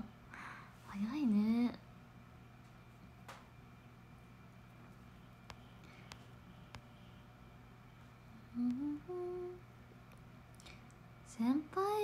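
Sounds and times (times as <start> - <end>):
woman humming: 8.3 - 9.6.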